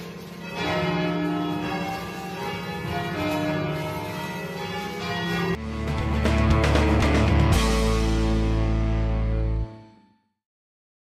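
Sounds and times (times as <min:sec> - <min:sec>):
church bells ringing: 0:00.0 - 0:08.2
music: 0:05.0 - 0:10.4.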